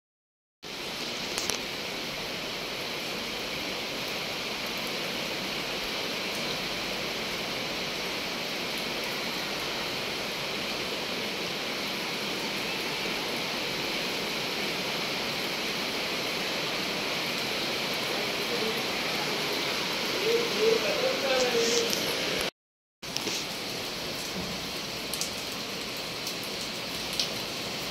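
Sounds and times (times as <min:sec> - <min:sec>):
heavy rain falling: 0:00.6 - 0:27.9.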